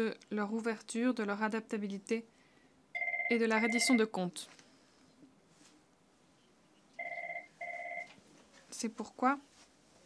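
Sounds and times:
telephone ringing: 3.0 - 4.0, 7.0 - 8.2.

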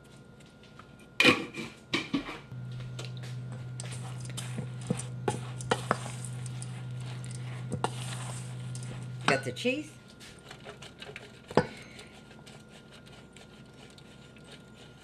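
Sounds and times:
steady low hum: 0.0 - 15.0
spoon stirring in metal bowl: 3.0 - 15.0.

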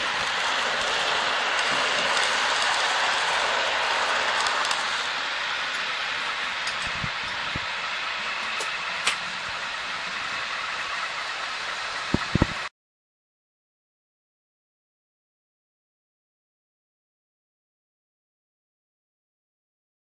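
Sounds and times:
model train rumbling on track: 0.0 - 12.7.

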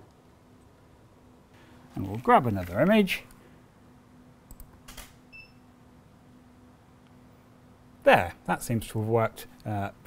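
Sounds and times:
faint steady hum: 0.0 - 10.0
camera shutter clicks: 4.9 - 5.2.

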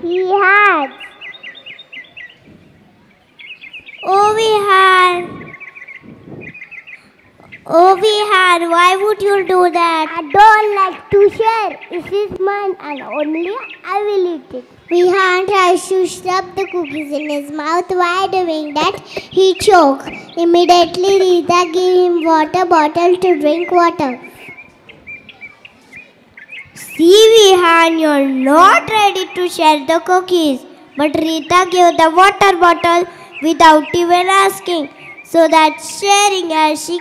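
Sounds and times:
child speaking into microphone: 0.0 - 1.2, 4.0 - 6.4, 7.4 - 24.5, 26.7 - 37.0
faint bird chirps: 0.0 - 37.0.

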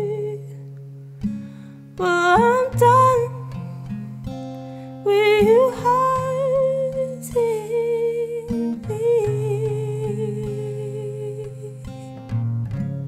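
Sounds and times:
strummed acoustic guitar: 0.0 - 13.0.

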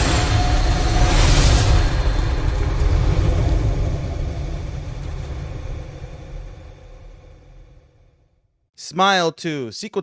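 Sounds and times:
deep rumble: 0.0 - 8.5.

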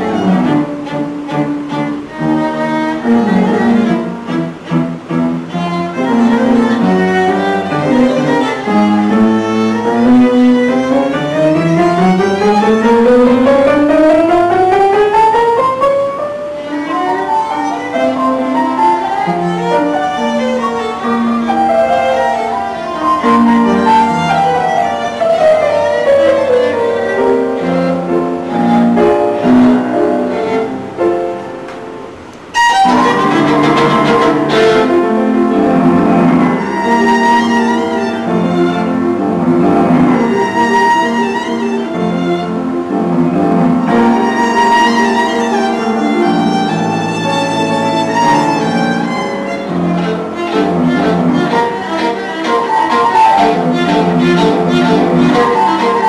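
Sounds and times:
violin playing rising line: 0.0 - 31.2, 32.4 - 56.0.

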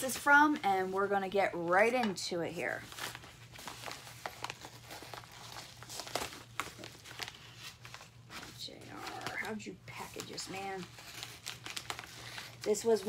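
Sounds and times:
paper packaging rustling: 2.7 - 13.0.

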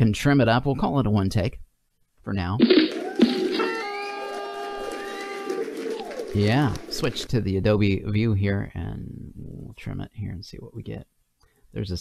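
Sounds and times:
rising whistle: 2.9 - 6.3.

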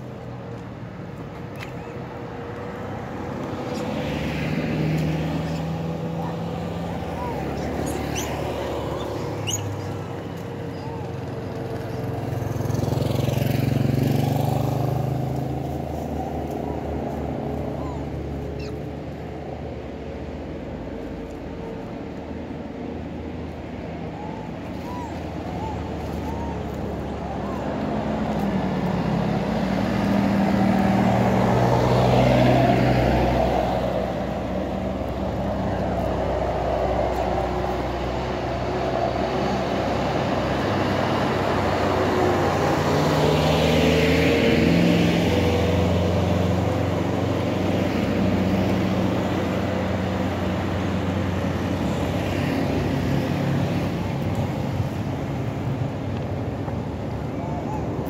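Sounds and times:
truck passing close: 0.0 - 58.0
vehicles passing on road: 0.0 - 58.0.

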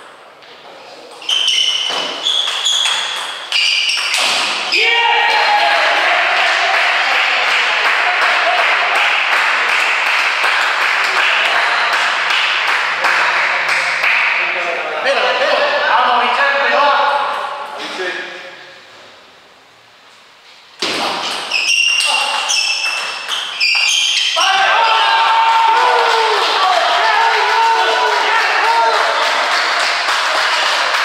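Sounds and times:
table tennis ball pinging: 1.2 - 4.5, 21.6 - 24.2
person shouting: 4.7 - 6.3.

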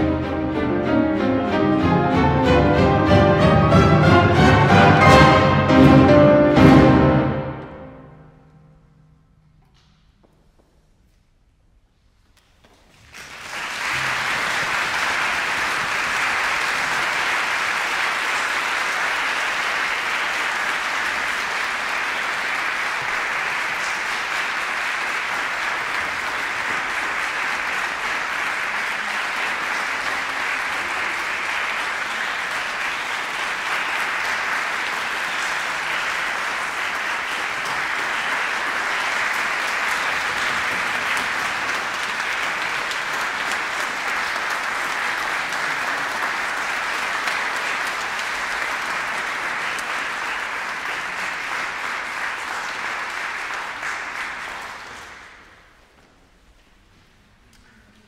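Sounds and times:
audience applause: 0.0 - 7.6, 12.7 - 55.8.

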